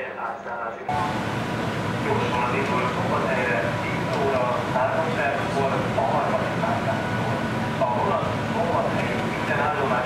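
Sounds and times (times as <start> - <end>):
people talking: 0.0 - 1.2, 2.0 - 10.0
train rumbling: 0.9 - 10.0.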